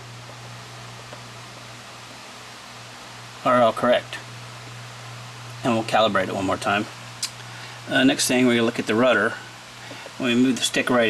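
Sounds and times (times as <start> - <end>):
steady hiss with low hum: 0.0 - 11.0.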